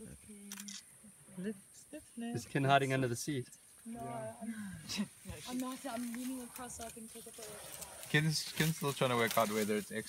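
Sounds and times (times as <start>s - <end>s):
camera shutters clicking: 0.5s - 0.8s.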